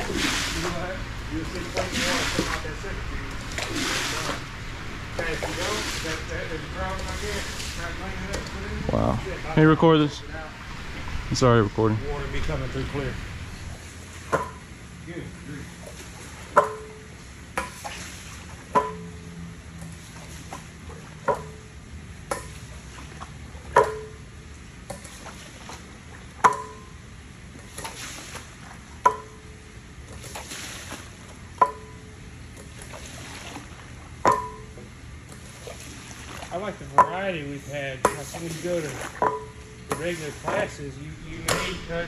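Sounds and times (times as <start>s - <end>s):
squeegee pushing across wet rug: 0.0s - 9.0s, 27.6s - 28.8s, 32.7s - 33.9s, 38.1s - 39.2s, 39.9s - 41.8s
wet splashing: 0.0s - 11.4s, 17.6s - 19.1s, 19.8s - 21.6s, 27.6s - 29.1s, 30.1s - 32.0s, 32.6s - 34.6s, 35.3s - 42.0s.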